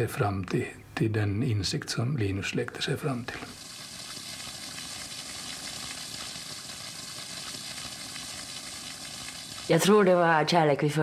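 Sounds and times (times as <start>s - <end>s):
steady hiss: 0.5s - 10.0s.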